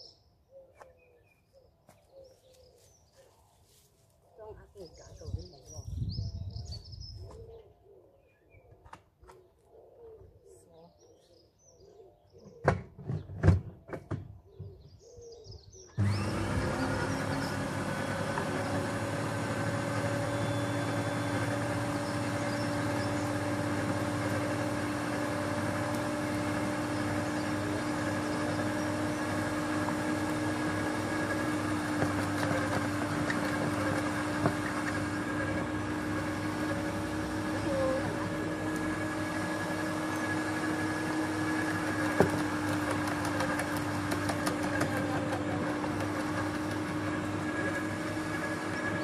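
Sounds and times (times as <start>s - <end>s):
shredder motor humming: 16.0s - 49.0s.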